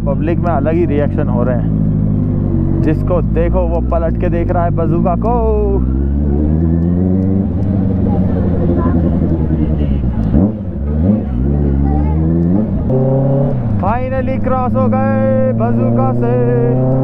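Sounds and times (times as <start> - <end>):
motorcycle engine revving: 0.0 - 17.0.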